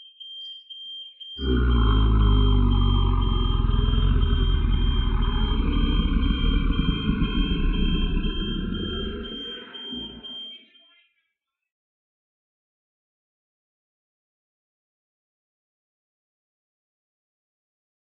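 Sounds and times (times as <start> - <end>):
loud low rumbling: 1.4 - 10.3.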